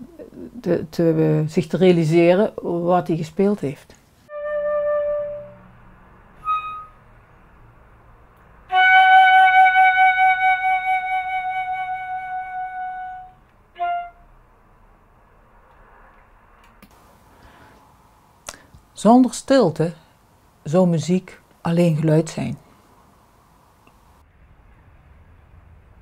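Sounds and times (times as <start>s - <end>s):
flute notes: 4.3s - 5.8s, 6.4s - 7.2s, 8.7s - 14.4s.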